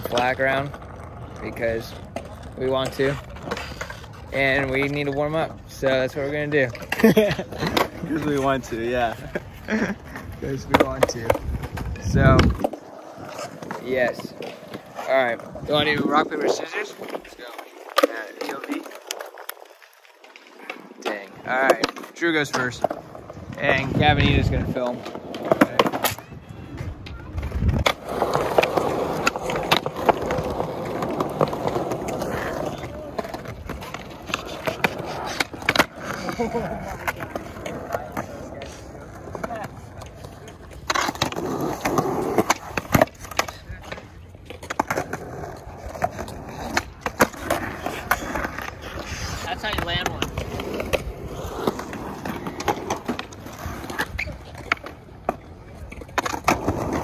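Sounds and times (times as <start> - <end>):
skateboard tail clacks: 0.0 - 57.0
skateboard wheels rolling on concrete: 0.0 - 57.0.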